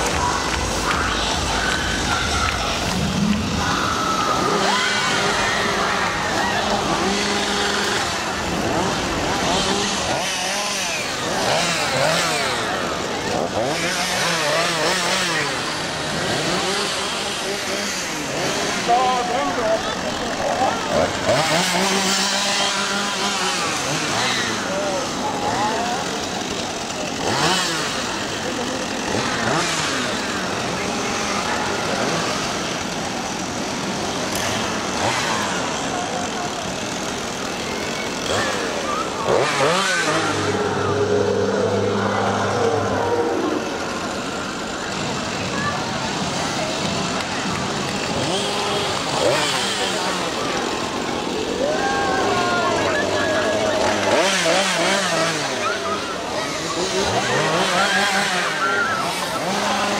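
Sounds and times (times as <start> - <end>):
chainsaws revving: 0.0 - 59.9
crowd voices and shrieks: 0.0 - 59.9.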